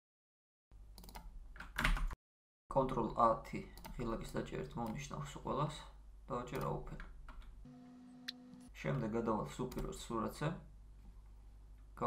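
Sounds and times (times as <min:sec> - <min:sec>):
person speaking: 0:02.7 - 0:07.2, 0:08.7 - 0:10.7.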